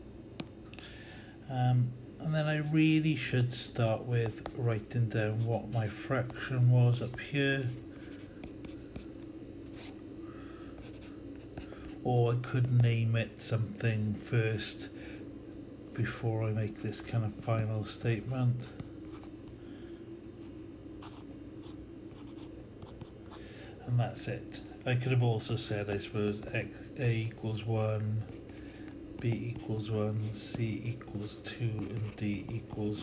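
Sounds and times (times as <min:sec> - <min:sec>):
faint steady hum: 0:00.0 - 0:33.0
stylus scratching on tablet: 0:04.2 - 0:07.2, 0:08.0 - 0:10.0, 0:10.8 - 0:13.0, 0:21.0 - 0:23.3, 0:28.2 - 0:33.0
stylus scratching on tablet screen: 0:21.0 - 0:23.2, 0:31.7 - 0:32.7.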